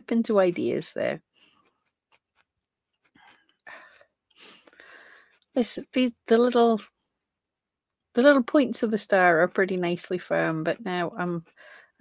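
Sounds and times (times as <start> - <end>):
felting needle poking wool: 0.0 - 12.0.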